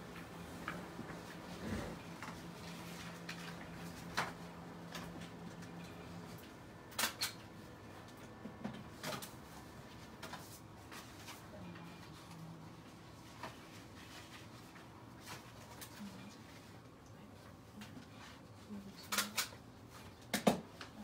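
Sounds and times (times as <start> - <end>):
steady low hum: 0.0 - 20.2.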